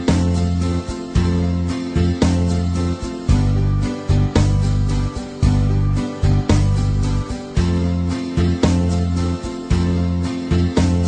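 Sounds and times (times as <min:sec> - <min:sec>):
strummed guitar music: 0:00.0 - 0:11.0.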